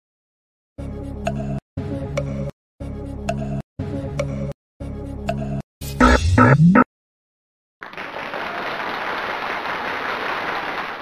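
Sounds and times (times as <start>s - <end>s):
people clapping: 7.8s - 11.0s.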